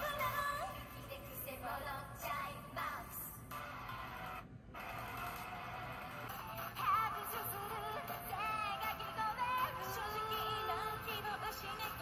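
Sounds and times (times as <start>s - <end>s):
concert audio from laptop speakers: 0.0s - 12.0s.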